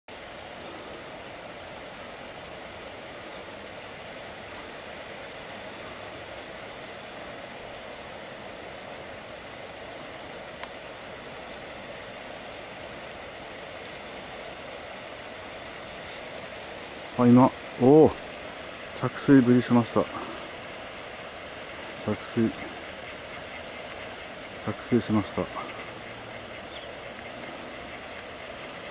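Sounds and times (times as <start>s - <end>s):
steady outdoor rushing noise: 0.1s - 28.9s.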